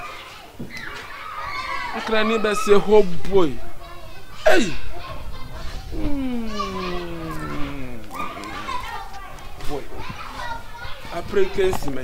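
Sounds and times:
man crying out: 6.0s - 8.4s
man talking: 6.0s - 8.8s.

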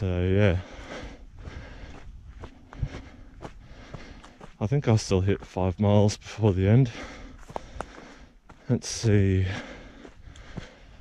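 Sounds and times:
running footsteps: 0.5s - 11.0s.

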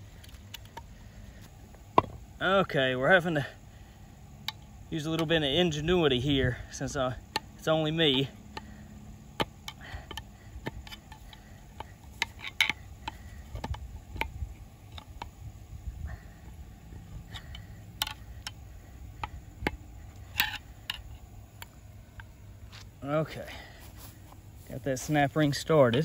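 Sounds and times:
metal tool clicking and scraping: 9.6s - 14.3s, 17.3s - 22.3s.

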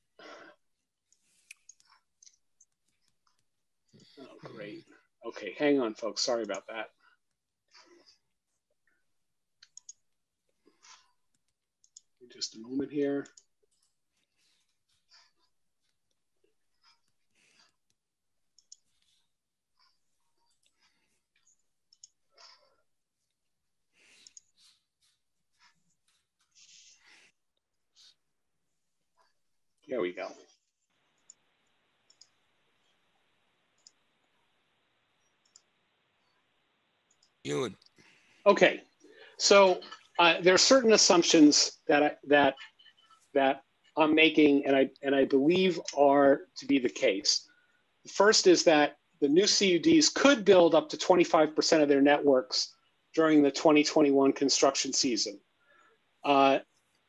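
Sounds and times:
person speaking: 4.2s - 6.9s, 37.5s - 37.7s, 39.4s - 42.6s.

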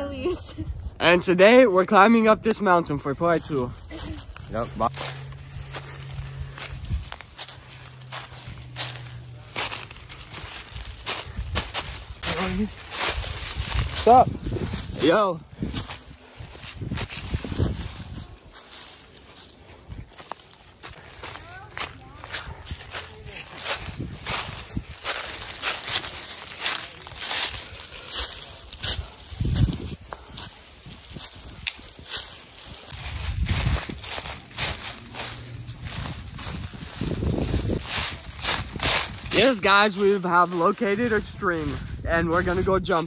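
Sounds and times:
footsteps crunching dry leaves: 3.2s - 43.0s.

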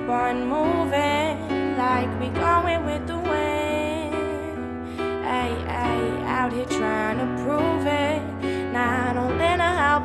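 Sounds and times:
instrumental backing track: 0.0s - 10.0s
woman singing: 0.0s - 10.0s.

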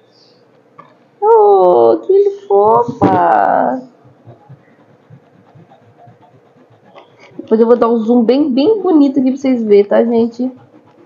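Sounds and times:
pencils scratching on paper: 0.8s - 11.0s.

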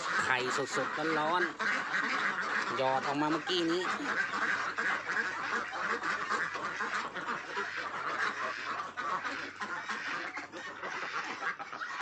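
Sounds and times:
ducks quacking: 0.0s - 12.0s.

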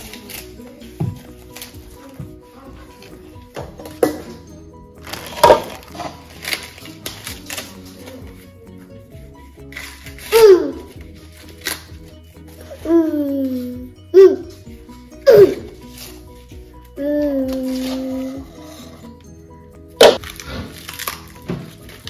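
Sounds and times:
corn husks tearing: 0.0s - 0.9s, 5.0s - 8.5s, 9.6s - 12.1s, 17.4s - 18.6s, 20.0s - 22.0s
background music: 0.0s - 22.0s.

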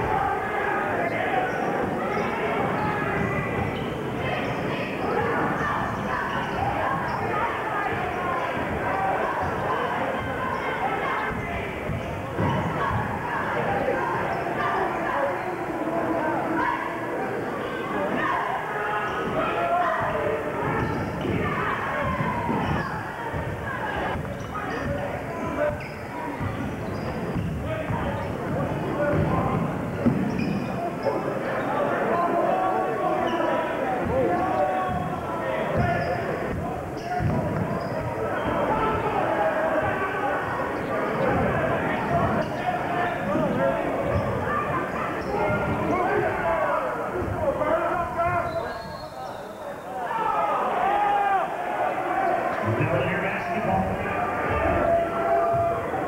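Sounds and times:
chatter of many voices: 0.0s - 56.0s.

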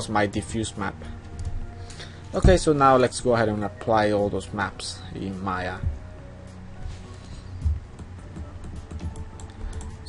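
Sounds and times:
quiet background music: 0.0s - 10.0s
keyboard and mouse clicks: 7.9s - 10.0s.

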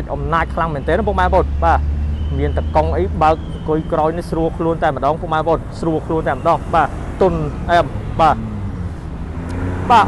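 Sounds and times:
man talking: 0.0s - 8.6s, 9.8s - 10.0s.

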